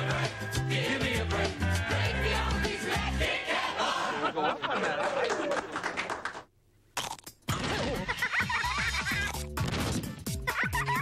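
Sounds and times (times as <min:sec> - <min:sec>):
cartoon characters laughing: 0:07.6 - 0:09.5, 0:10.4 - 0:11.0.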